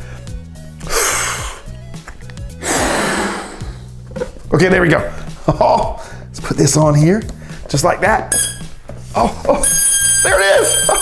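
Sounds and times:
breaths blown into balloon: 0.0s - 1.9s, 2.5s - 4.0s
background music with steady beat: 0.0s - 11.0s.

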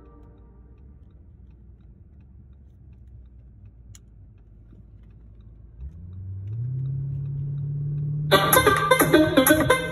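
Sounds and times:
car engine inside cabin: 0.0s - 9.9s
plucked-string music: 7.8s - 9.9s.

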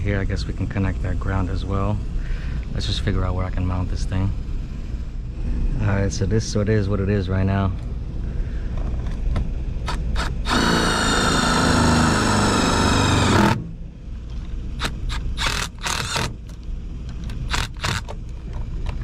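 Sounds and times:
low rumble: 0.0s - 19.0s
cordless drill running: 9.8s - 13.6s, 14.8s - 16.6s, 17.4s - 18.1s.

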